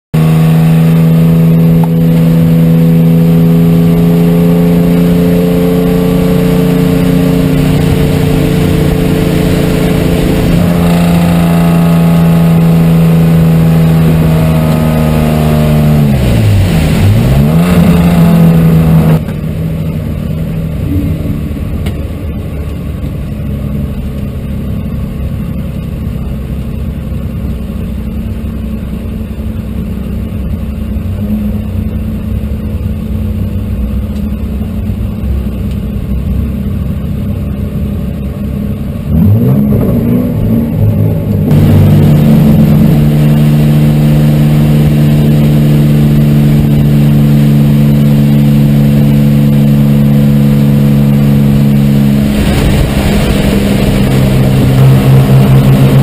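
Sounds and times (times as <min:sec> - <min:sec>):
race car engine at high revs: 0:00.1 - 0:56.0
road noise: 0:00.2 - 0:56.0.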